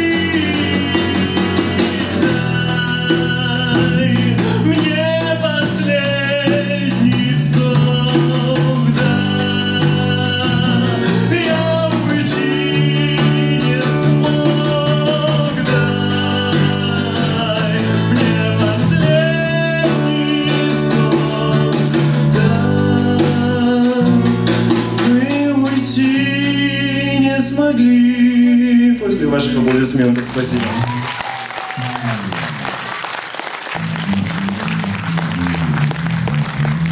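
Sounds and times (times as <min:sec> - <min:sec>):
drum kit playing: 0:00.0 - 0:28.0, 0:29.2 - 0:36.9
strummed acoustic guitar: 0:00.0 - 0:29.7.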